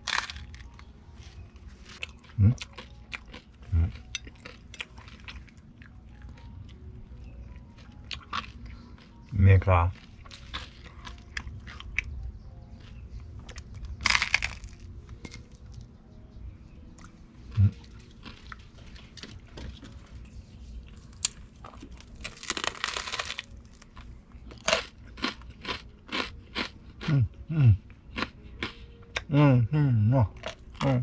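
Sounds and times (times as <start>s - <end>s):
toast crunching: 0.0s - 6.8s, 7.7s - 9.1s, 9.9s - 12.1s, 12.8s - 15.9s, 17.0s - 20.0s, 20.9s - 27.2s, 28.1s - 28.8s.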